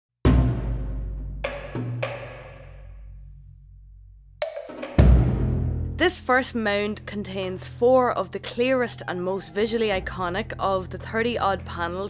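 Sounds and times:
deep percussion stroke: 0:00.3 - 0:06.5.

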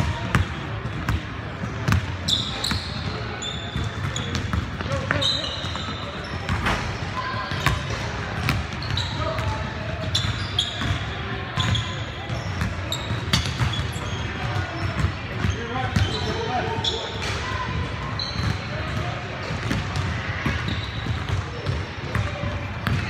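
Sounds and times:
basketball bouncing: 0:00.1 - 0:03.2, 0:03.8 - 0:06.8, 0:07.5 - 0:16.2, 0:19.5 - 0:23.0
sneakers squeaking on hardwood: 0:01.9 - 0:17.3, 0:18.1 - 0:18.7.

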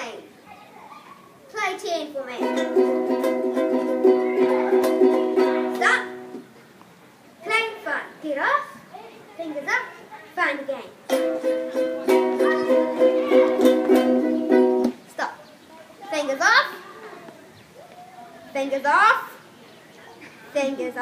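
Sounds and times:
ukuleles strumming: 0:02.3 - 0:06.4, 0:11.0 - 0:15.0.

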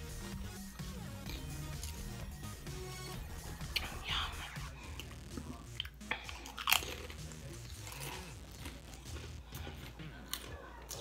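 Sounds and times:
potato chips crunching: 0:05.0 - 0:11.0.

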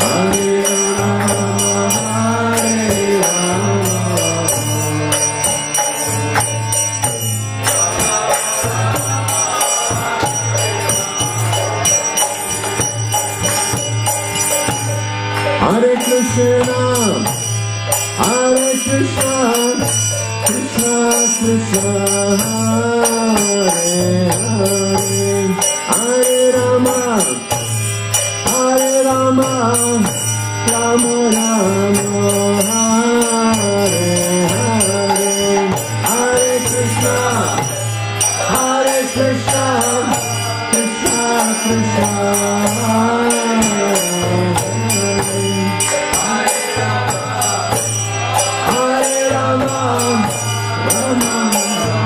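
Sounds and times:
man singing a chant: 0:00.0 - 0:06.8, 0:07.6 - 0:12.9, 0:15.4 - 0:52.0
hand cymbals jingling: 0:00.0 - 0:52.0
harmonium melody over drone: 0:00.0 - 0:52.0.

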